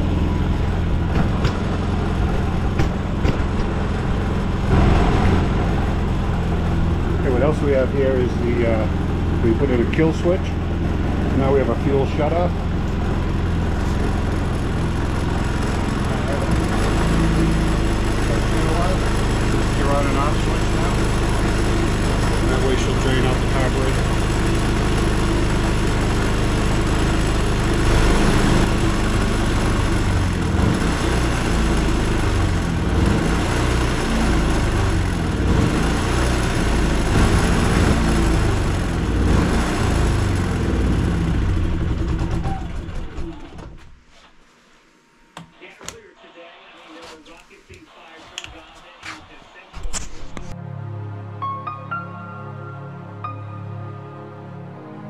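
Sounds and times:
generator engine running: 0.0 - 43.9.

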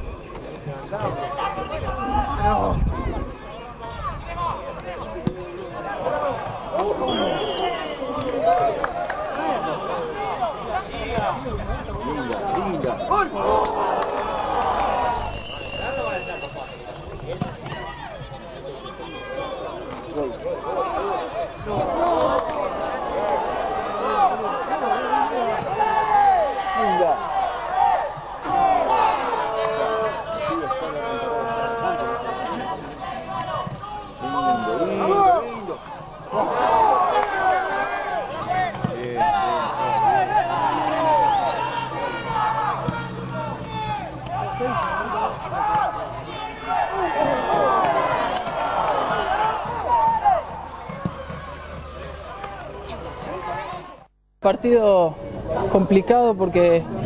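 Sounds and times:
players and spectators calling out: 0.1 - 57.0
crowd shouting: 5.7 - 54.1.

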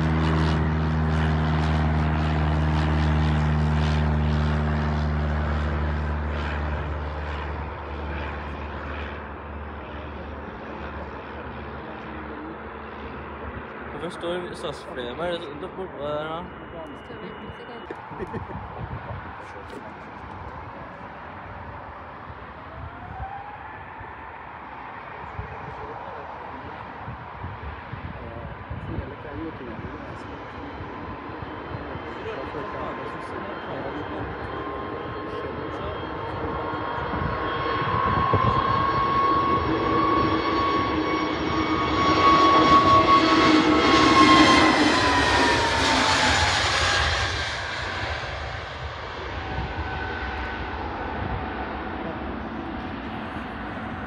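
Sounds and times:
jet airliner engine whine: 0.0 - 54.0.

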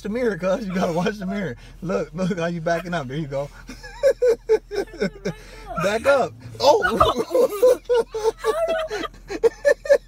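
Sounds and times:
man talking: 0.0 - 3.6, 5.8 - 7.2
man chuckling: 6.6 - 10.0.

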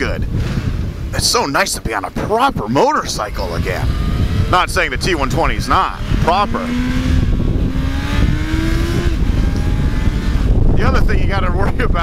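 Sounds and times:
wind noise on microphone: 0.0 - 12.0
motorcycle engine accelerating: 3.3 - 12.0.

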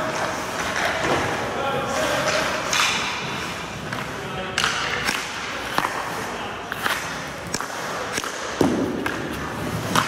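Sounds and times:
hockey sticks and pucks clacking: 0.0 - 10.0.

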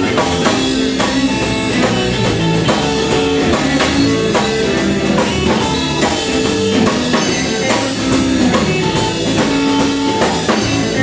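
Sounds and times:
bass guitar: 0.0 - 11.0
drum kit beat: 0.0 - 11.0
electric guitars: 0.0 - 11.0
keyboard chords: 0.0 - 11.0.

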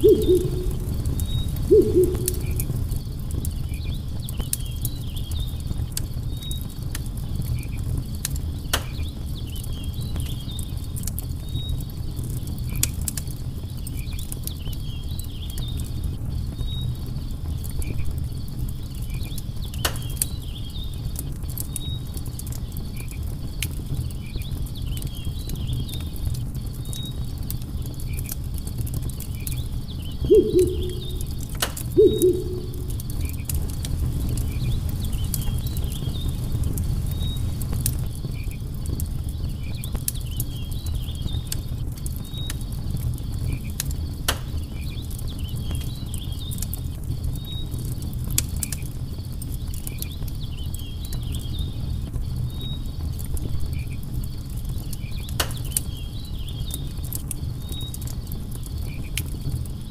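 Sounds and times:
bird low hoots: 0.0 - 2.8, 30.2 - 33.2
faint insect chirps: 0.0 - 3.2, 30.3 - 33.3
campfire crackling and popping: 0.0 - 59.9.

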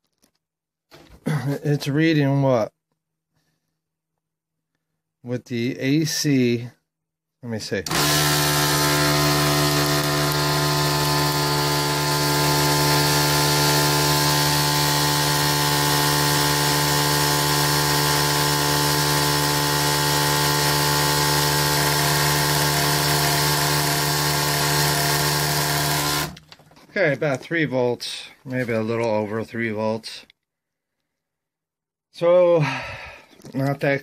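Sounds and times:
electric motor humming with whine: 7.9 - 26.4.

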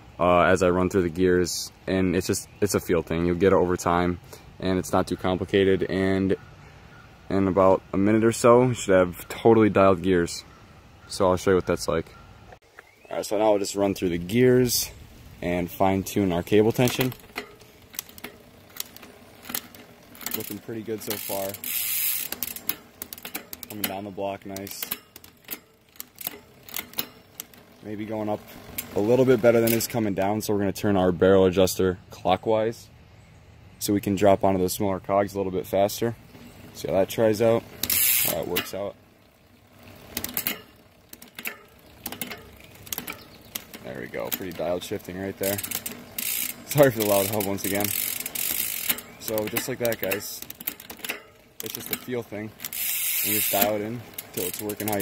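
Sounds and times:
derailleur shifting clicks: 16.3 - 30.2, 37.4 - 38.9, 39.7 - 55.0
bicycle chain running over cassette: 16.4 - 29.7, 37.4 - 55.0
rear hub ticking: 36.3 - 55.0.

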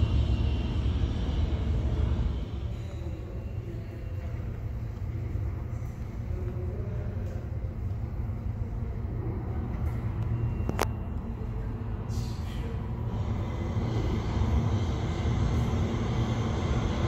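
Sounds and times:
subway train rumble in tunnel: 0.0 - 17.0.

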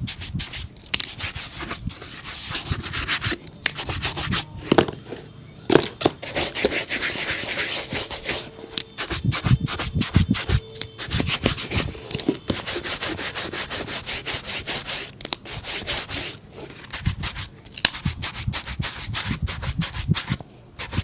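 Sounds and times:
shoe brush scrubbing leather: 6.3 - 11.9, 12.5 - 21.0.

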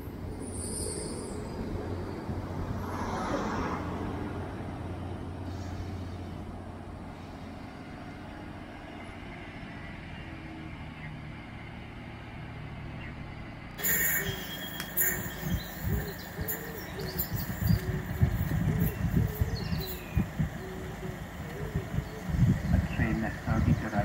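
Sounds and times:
diesel train engine drone: 0.0 - 24.0
brief hiss: 13.8 - 15.3.

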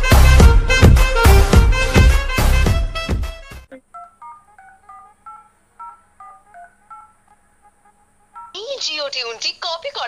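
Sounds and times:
upbeat intro music: 0.0 - 8.7.

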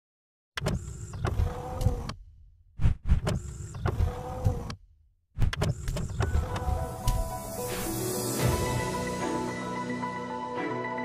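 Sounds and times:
click: 0.6 - 2.2
mechanical whirring slide: 0.6 - 2.2, 2.8 - 4.8, 5.4 - 7.9.

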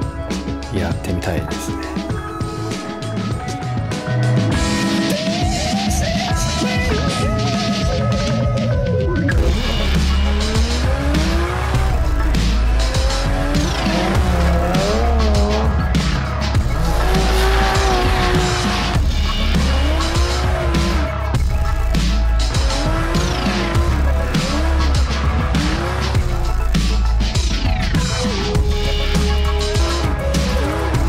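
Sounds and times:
music with heavy bass: 0.0 - 31.0
car engine revving: 9.4 - 31.0.

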